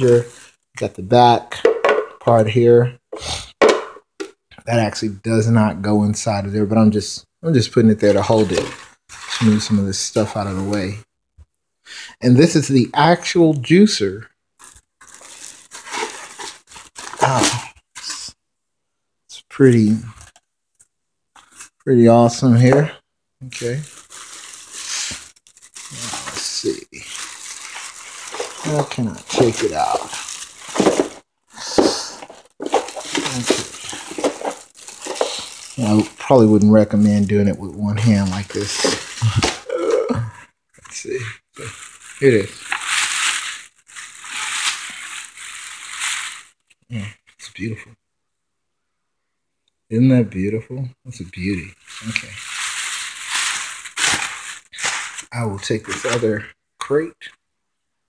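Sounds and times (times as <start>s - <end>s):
plastic bag crinkling: 8.1s - 11.0s, 14.6s - 17.6s, 23.4s - 39.8s, 40.9s - 46.7s, 51.8s - 56.2s
short vocal grunt: 39.2s - 40.4s.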